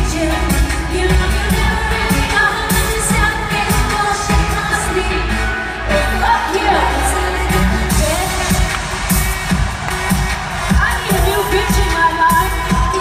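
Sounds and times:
synthpop dance music: 0.0 - 13.0.

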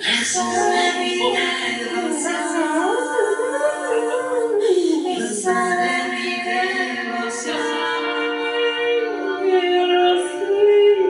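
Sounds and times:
looped vocal held notes: 0.0 - 11.0
person singing wavering glide: 0.0 - 11.0.

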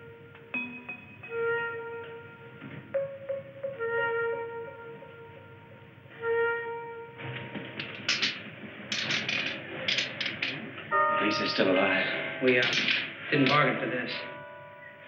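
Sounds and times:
warbling electronic tones: 1.2 - 7.2
held woodwind-like note: 1.2 - 7.6
rapid clattering bursts: 7.2 - 11.0.

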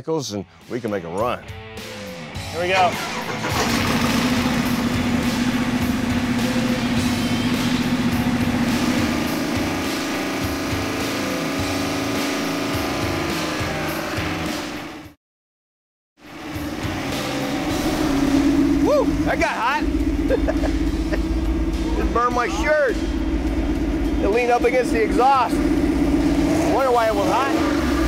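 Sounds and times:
engine running at fast idle: 2.6 - 14.1, 16.3 - 28.0.

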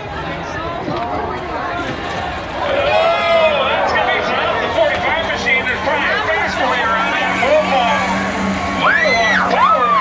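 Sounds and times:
crowd chatter: 0.0 - 10.0
spectator whooping: 8.8 - 10.0.

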